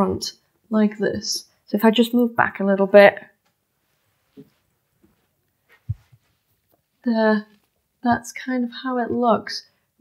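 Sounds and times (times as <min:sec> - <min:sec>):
soft low thump: 0:05.8 - 0:06.3.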